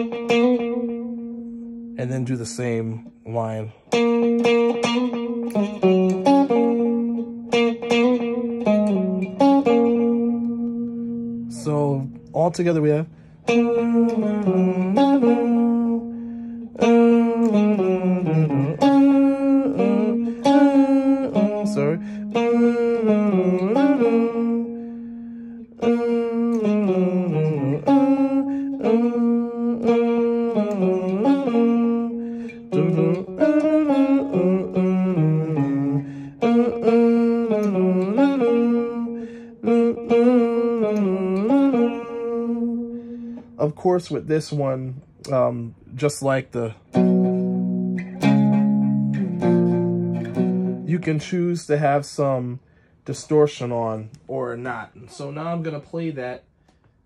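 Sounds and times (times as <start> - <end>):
electric guitar riff: 0.0 - 55.8.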